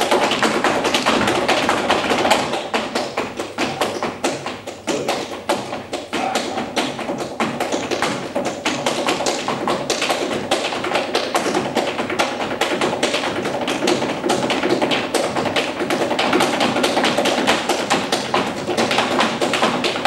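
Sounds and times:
flamenco guitars playing: 0.0s - 10.0s
rhythmic hand clapping and taps: 0.0s - 20.0s.

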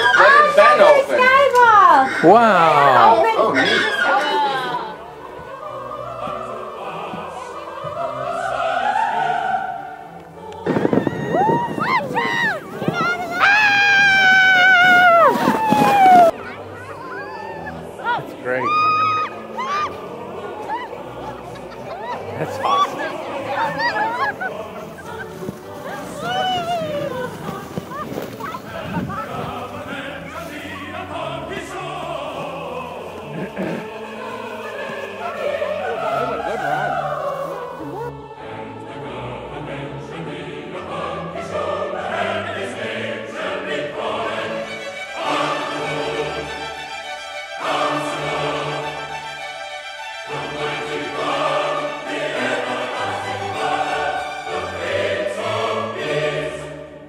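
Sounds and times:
children yelling: 0.0s - 0.8s, 10.7s - 20.0s, 20.6s - 24.5s, 25.9s - 27.1s, 27.8s - 29.6s
classical-style singing: 0.0s - 57.0s
orchestral accompaniment: 16.2s - 57.0s.

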